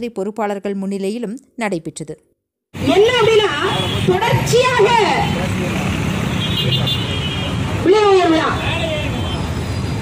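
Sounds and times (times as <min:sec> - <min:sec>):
street traffic noise: 0:02.7 - 0:10.0
woman's raised voice on microphone: 0:02.8 - 0:05.3.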